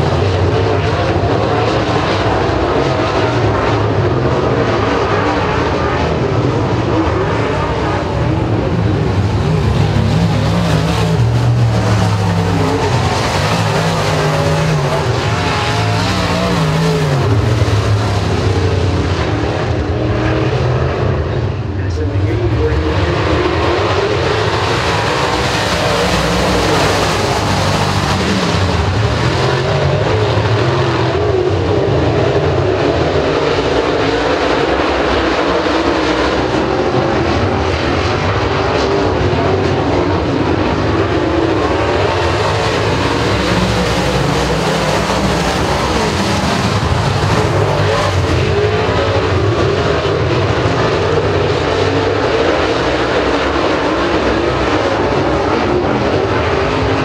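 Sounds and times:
race car engines at speed: 0.0s - 57.0s.

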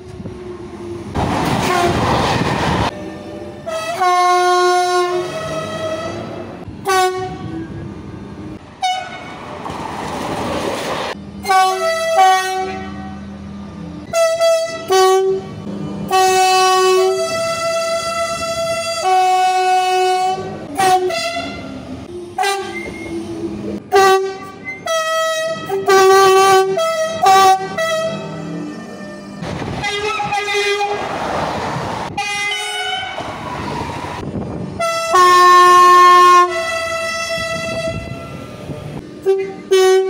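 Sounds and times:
rushing train noise: 0.0s - 40.0s
train horn toots: 1.6s - 2.1s, 3.6s - 7.7s, 8.8s - 9.4s, 11.4s - 13.2s, 14.0s - 23.1s, 23.9s - 31.0s, 32.1s - 33.2s, 34.8s - 38.5s, 39.2s - 40.0s.

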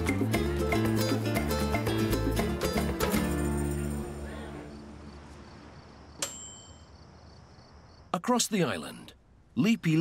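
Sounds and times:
insect chirping: 4.7s - 9.1s
bright ringing clink: 6.2s - 6.9s.

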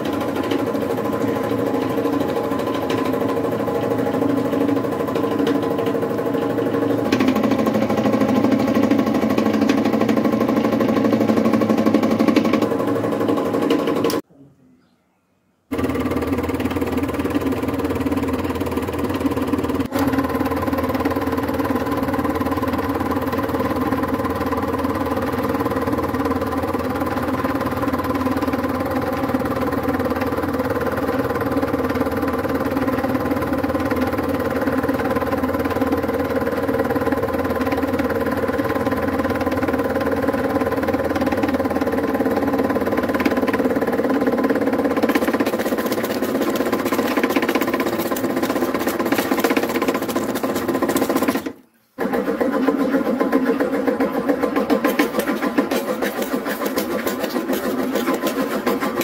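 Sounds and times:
hydraulic press pump hum: 0.0s - 14.3s, 15.7s - 59.0s.

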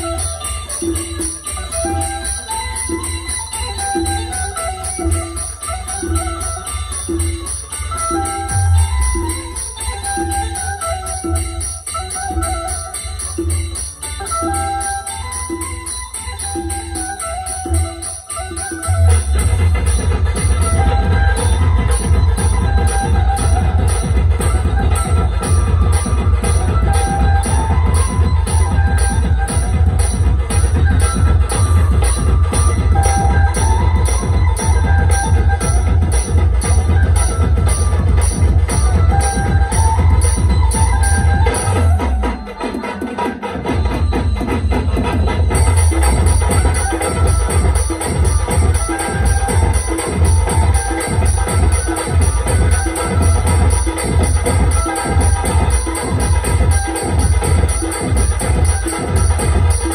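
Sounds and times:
repeating melody: 0.0s - 59.9s
heavy bass drum beat: 18.8s - 42.4s, 43.7s - 59.9s
fast ticking hi-hats: 44.1s - 59.9s.

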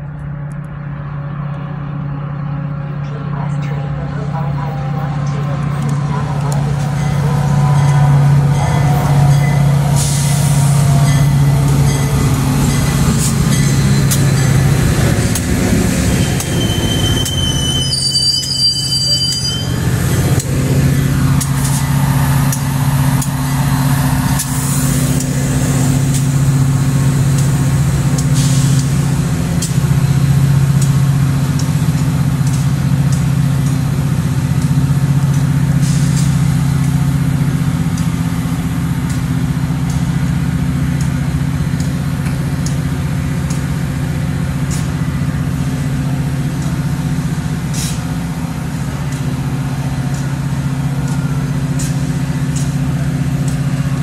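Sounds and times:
diesel locomotive idling: 0.0s - 54.0s.

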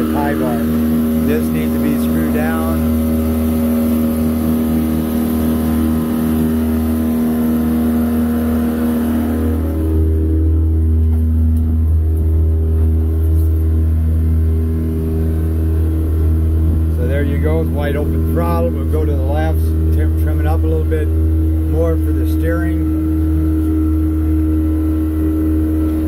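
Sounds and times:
outboard motor running: 0.0s - 26.0s.

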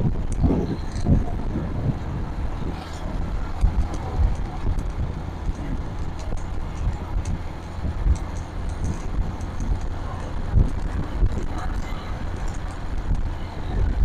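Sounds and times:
motorcycle engine running: 0.0s - 14.0s
wind buffeting microphone: 0.0s - 14.0s.

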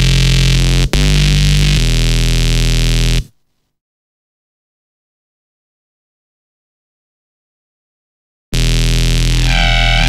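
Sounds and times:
buzzy synth bass note: 0.0s - 3.3s, 8.6s - 10.0s.

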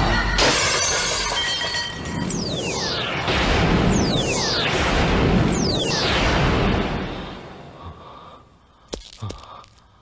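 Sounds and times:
glass shattering: 0.0s - 2.5s.

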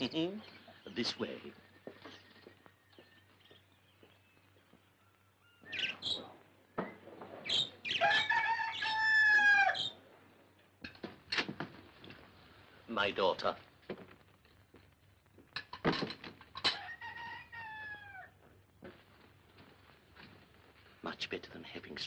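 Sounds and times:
caged birds chirping faintly: 0.0s - 22.0s
bird squawks: 5.4s - 6.4s
cockerel crowing: 7.5s - 10.0s, 16.6s - 18.4s.

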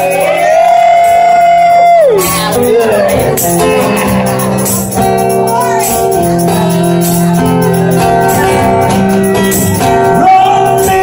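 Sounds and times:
strummed acoustic guitars: 0.0s - 11.0s.

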